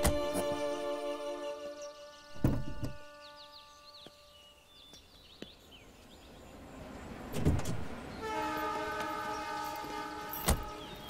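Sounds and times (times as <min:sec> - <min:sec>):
held horn-like chord: 0:00.0 - 0:04.7, 0:08.2 - 0:11.0.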